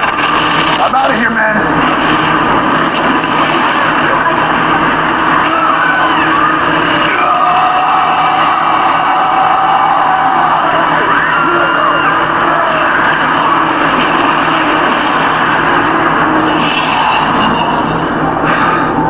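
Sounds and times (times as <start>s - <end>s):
loud rushing sound effect: 1.6s - 8.8s.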